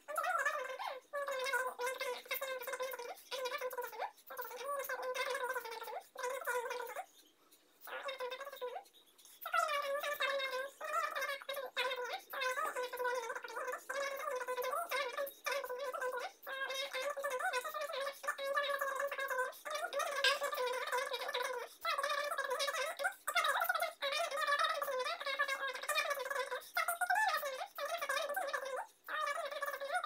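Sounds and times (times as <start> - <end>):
woman talking in high voice: 0.0 - 7.1, 7.8 - 30.0.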